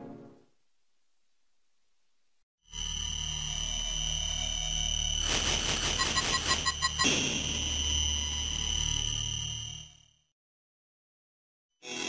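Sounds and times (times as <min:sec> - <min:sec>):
electronic jingle high tone: 0:05.8 - 0:07.2.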